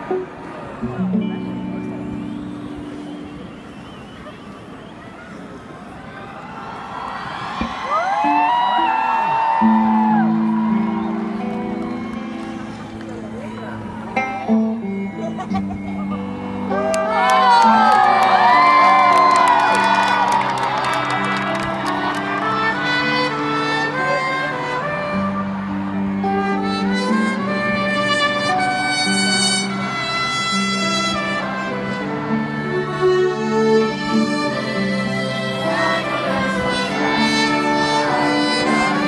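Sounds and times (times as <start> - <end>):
live band with strings: 0.0 - 5.8, 7.6 - 39.0
crowd cheering and screaming: 2.2 - 14.5, 15.2 - 29.8, 34.2 - 39.0.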